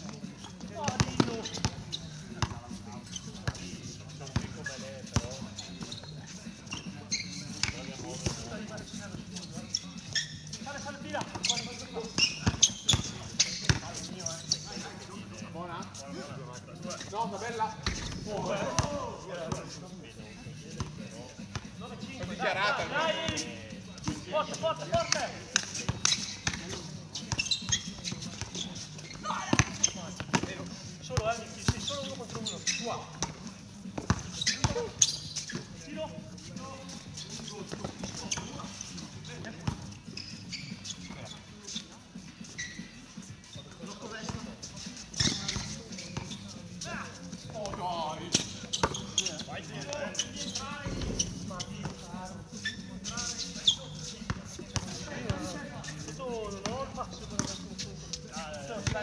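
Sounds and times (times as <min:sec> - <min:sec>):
basketball bouncing on court: 0:29.5 - 0:30.5, 0:34.0 - 0:34.9.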